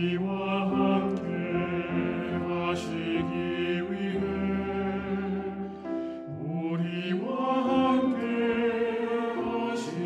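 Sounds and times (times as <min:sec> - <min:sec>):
choir singing sustained notes: 0:00.0 - 0:10.0
piano accompaniment: 0:00.0 - 0:10.0.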